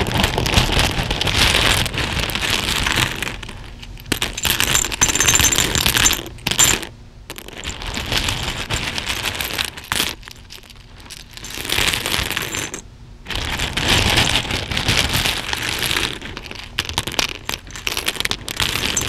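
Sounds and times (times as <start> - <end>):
plastic buttons and beads clattering: 0.0 - 19.0.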